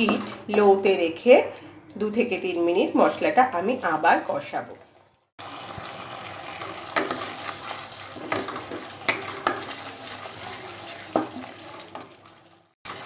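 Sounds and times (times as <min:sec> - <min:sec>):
paste sizzling in hot oil: 0:05.4 - 0:13.0
spatula scraping pan: 0:06.5 - 0:12.2.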